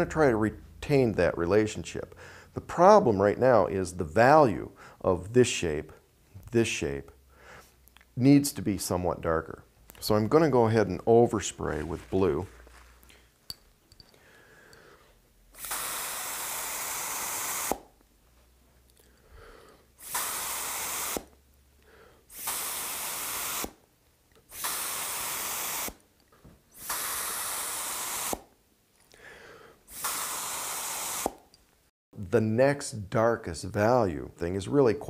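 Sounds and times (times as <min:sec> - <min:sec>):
mouth atomizer spraying hiss: 0:15.5 - 0:18.0, 0:20.0 - 0:21.4, 0:22.3 - 0:23.8, 0:24.4 - 0:26.0, 0:26.7 - 0:28.5, 0:29.8 - 0:31.5.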